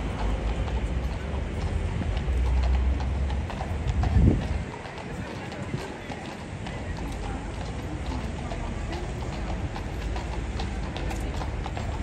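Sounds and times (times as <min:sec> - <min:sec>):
hooves clip-clopping on pavement: 0:00.0 - 0:12.0.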